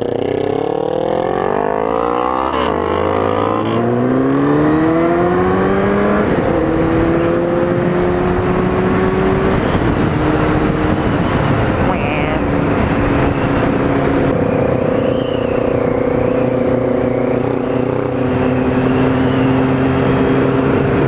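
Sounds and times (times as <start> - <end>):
motorcycle engine accelerating: 0.0 - 21.0
wind rush on microphone: 4.8 - 21.0.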